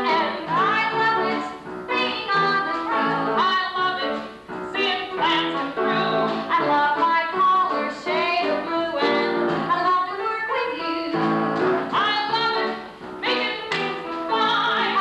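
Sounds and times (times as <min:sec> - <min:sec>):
women singing: 0:00.0 - 0:04.2, 0:04.8 - 0:11.2, 0:11.9 - 0:15.0
instrumental accompaniment: 0:00.0 - 0:15.0.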